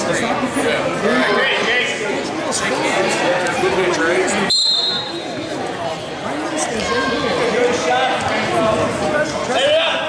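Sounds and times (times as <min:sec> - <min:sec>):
spectators chattering: 0:00.0 - 0:10.0
referee whistle blast: 0:04.5 - 0:05.2.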